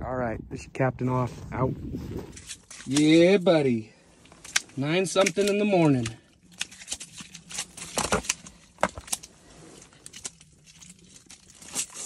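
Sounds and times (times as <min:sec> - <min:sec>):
fish being handled on ice: 0:02.0 - 0:12.0.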